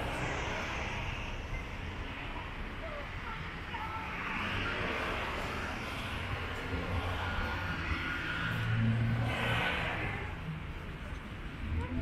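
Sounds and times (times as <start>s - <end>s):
cars driving past: 0.0s - 12.0s.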